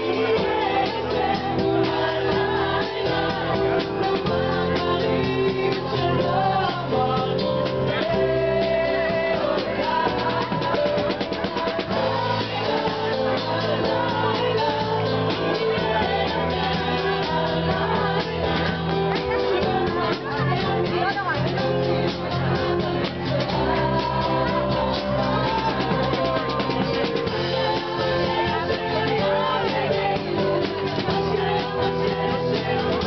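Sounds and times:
live band music: 0:00.0 - 0:33.0
quick drum strokes: 0:00.0 - 0:33.0.

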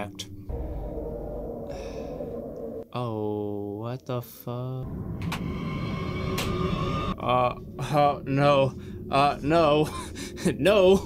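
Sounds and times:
steady low rumble: 0:00.1 - 0:03.3, 0:04.8 - 0:11.0.

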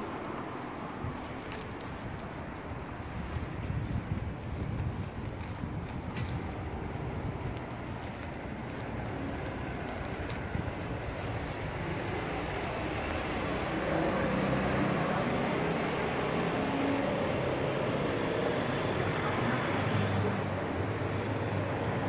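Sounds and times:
wind buffeting microphone: 0:00.0 - 0:18.5
vehicle engine approaching: 0:00.0 - 0:21.4
low traffic rumble: 0:00.0 - 0:22.0.

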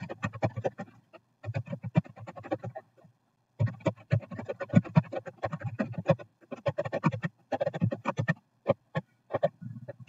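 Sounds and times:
fast typing on keyboard: 0:00.0 - 0:02.8, 0:03.6 - 0:10.0.

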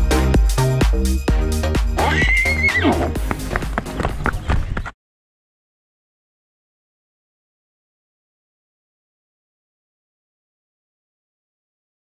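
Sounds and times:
upbeat electronic music: 0:00.0 - 0:04.1
horse whinny: 0:02.0 - 0:03.2.

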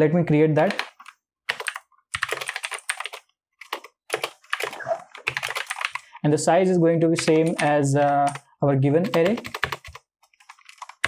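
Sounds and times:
computer keyboard typing: 0:00.6 - 0:06.2, 0:07.2 - 0:11.0.

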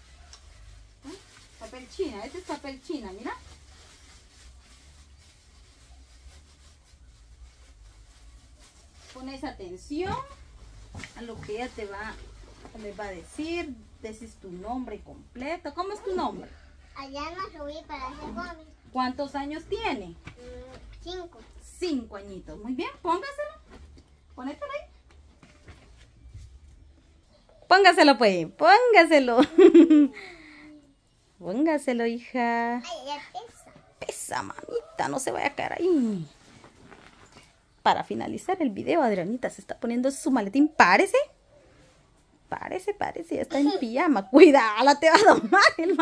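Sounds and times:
plastic bag and tissue paper rustling: 0:00.0 - 0:27.0, 0:31.3 - 0:39.8, 0:41.9 - 0:46.0
backpack rustling and handling: 0:36.3 - 0:37.5.

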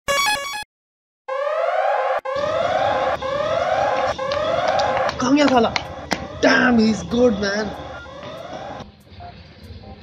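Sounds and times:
burglar alarm whooping siren: 0:01.3 - 0:08.9
electronic beep jingle: 0:06.3 - 0:08.8.

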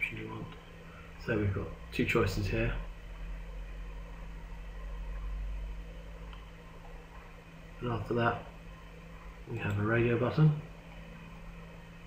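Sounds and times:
low electrical hum: 0:00.0 - 0:12.0
microphone hiss: 0:00.0 - 0:12.0.

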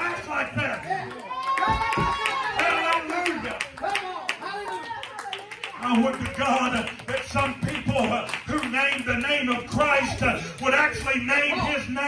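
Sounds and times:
man speaking: 0:05.8 - 0:12.0.

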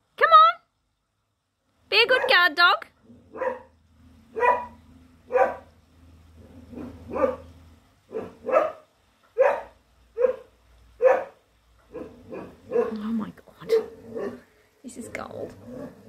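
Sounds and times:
dog barking: 0:02.1 - 0:02.5, 0:03.3 - 0:05.7, 0:06.7 - 0:07.5, 0:08.1 - 0:13.0, 0:13.7 - 0:14.5.

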